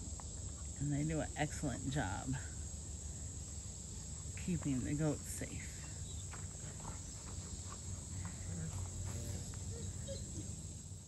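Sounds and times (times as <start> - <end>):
high-pitched insect drone: 5.1 - 11.0
footsteps crunching on dirt: 5.8 - 10.6.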